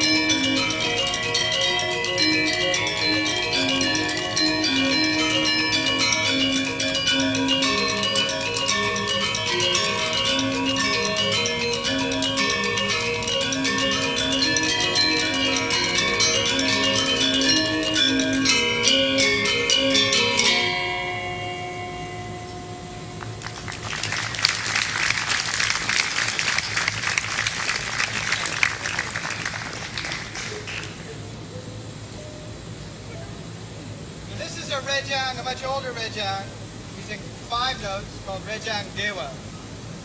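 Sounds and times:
gamelan metallophones playing: 0:00.0 - 0:31.2
audience applauding: 0:23.2 - 0:31.2.

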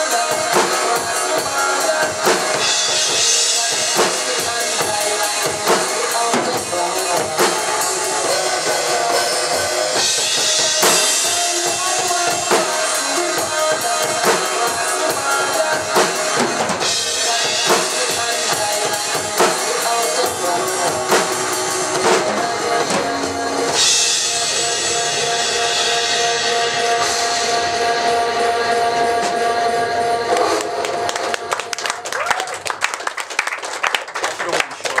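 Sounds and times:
drum and bass backing track: 0:00.0 - 0:32.0
drum kit playing: 0:00.0 - 0:32.8.

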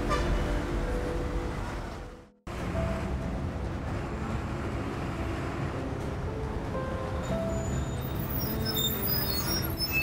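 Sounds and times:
road traffic drone: 0:00.0 - 0:10.0.

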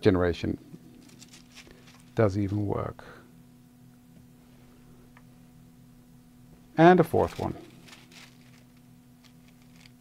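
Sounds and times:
soft rustle of paper: 0:01.0 - 0:02.2, 0:07.1 - 0:10.0.

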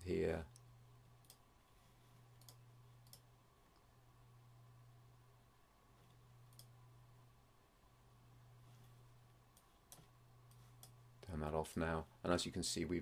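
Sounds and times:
computer mouse clicks: 0:00.5 - 0:01.4, 0:02.3 - 0:03.9, 0:06.0 - 0:06.8, 0:09.5 - 0:11.0.

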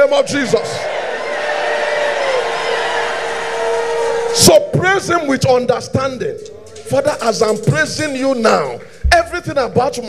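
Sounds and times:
congregation shouting and praying: 0:00.0 - 0:10.0.

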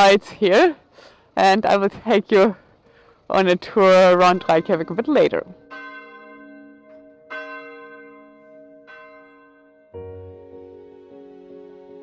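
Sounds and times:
church bell tolling: 0:04.2 - 0:10.3.

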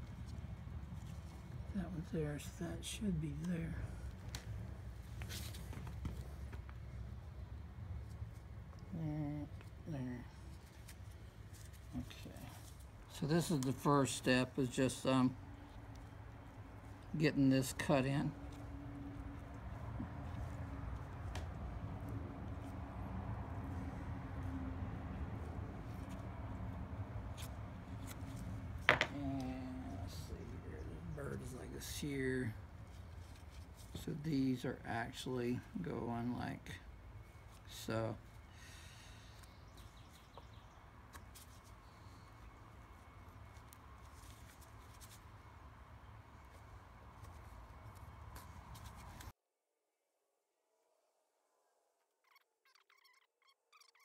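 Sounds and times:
low background hum: 0:00.0 - 0:49.3
low steady background rumble: 0:00.0 - 0:49.3.

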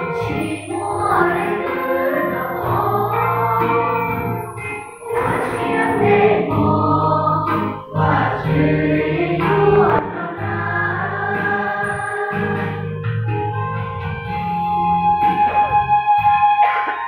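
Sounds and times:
youth choir singing a hymn: 0:00.0 - 0:04.4, 0:05.0 - 0:12.9.

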